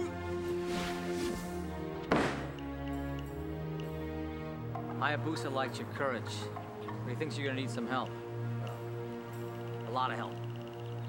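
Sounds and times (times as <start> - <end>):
wrestler landing heavy thud: 2.1 - 2.5.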